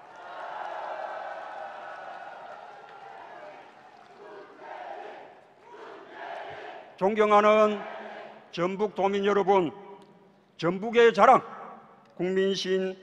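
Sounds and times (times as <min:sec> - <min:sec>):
arena crowd cheering: 0:00.0 - 0:08.5.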